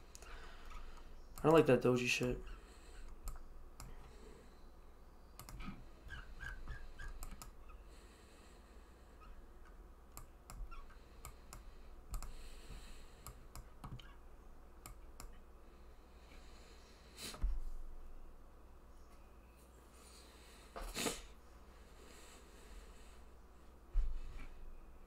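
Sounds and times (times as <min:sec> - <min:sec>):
computer mouse and keyboard clicks: 0:03.0 - 0:04.0, 0:05.4 - 0:05.8, 0:06.4 - 0:07.5, 0:10.1 - 0:12.3, 0:13.2 - 0:14.1.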